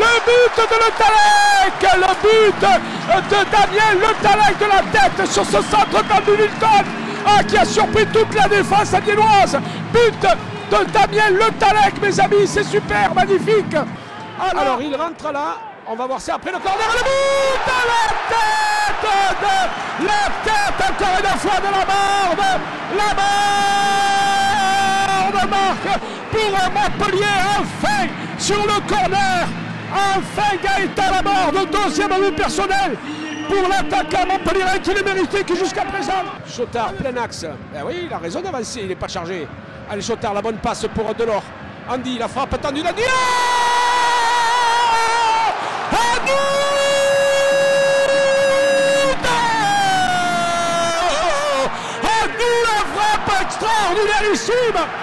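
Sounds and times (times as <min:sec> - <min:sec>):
man shouting into a microphone: 0:00.0 - 0:13.7, 0:14.3 - 0:36.4, 0:42.6 - 0:55.0
man shouting a long high note: 0:46.0 - 0:53.0.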